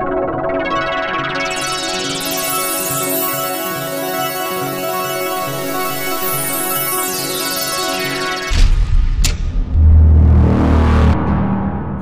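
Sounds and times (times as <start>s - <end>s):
loud deep rumbling swell: 8.7s - 12.0s.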